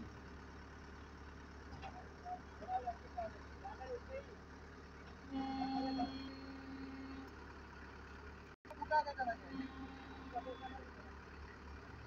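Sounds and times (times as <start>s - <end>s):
crane engine running: 0.0s - 12.0s
steady whine: 5.3s - 7.4s.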